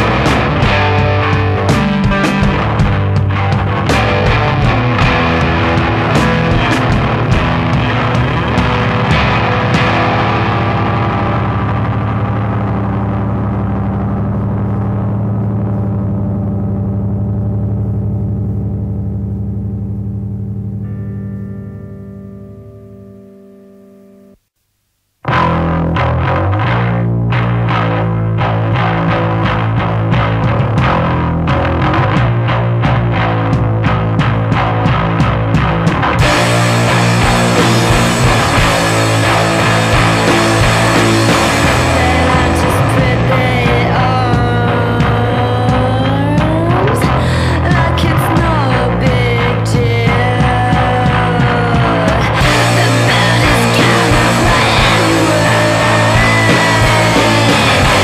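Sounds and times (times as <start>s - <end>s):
distorted electric guitar chord ringing: 0.0s - 24.5s, 25.2s - 48.2s, 50.8s - 58.0s.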